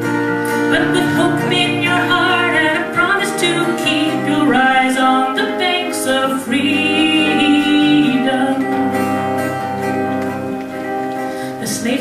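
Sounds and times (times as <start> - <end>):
strummed acoustic guitar: 0.0 - 12.0
woman singing folk song: 0.1 - 12.0.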